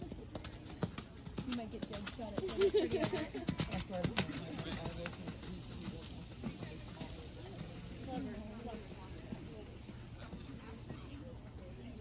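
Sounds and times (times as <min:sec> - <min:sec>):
horse hoofbeats on sand: 0:00.0 - 0:11.7.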